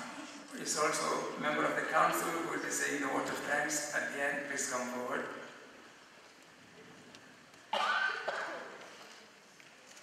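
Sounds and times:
person coughing: 0:07.7 - 0:08.8.

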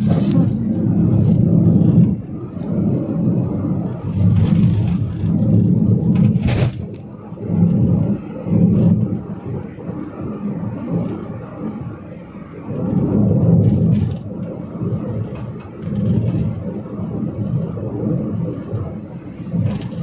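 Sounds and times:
road vehicle rumble: 0:00.0 - 0:20.0
wind noise through open window: 0:00.0 - 0:20.0.

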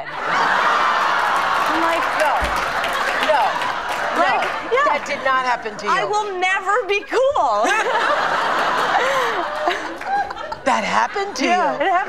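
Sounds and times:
studio audience laughing: 0:00.0 - 0:12.0.

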